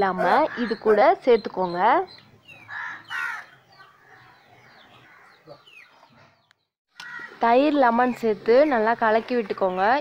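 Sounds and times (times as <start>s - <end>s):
chirping bird calls: 0.0s - 10.0s.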